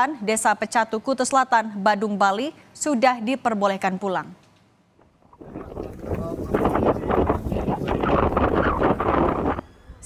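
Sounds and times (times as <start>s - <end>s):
wind buffeting microphone: 5.2s - 10.0s.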